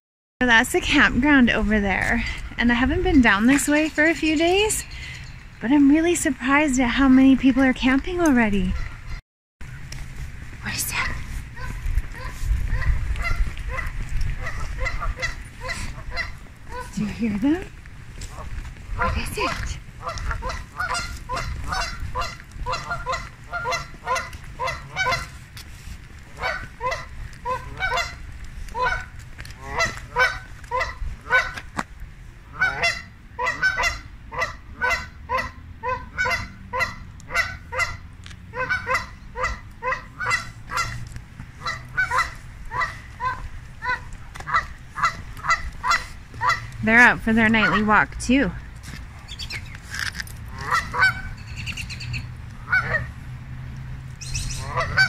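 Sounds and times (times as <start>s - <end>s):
geese honking: 6.4s - 9.2s, 10.6s - 31.8s, 32.4s - 48.6s, 50.5s - 53.3s, 54.2s - 55.0s.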